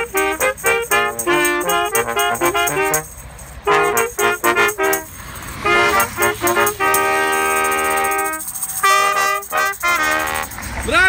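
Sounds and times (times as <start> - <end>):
brass section playing a tune: 0.0 - 10.6
motorway traffic rumbling: 0.0 - 11.0
tambourine shaking: 0.0 - 11.0.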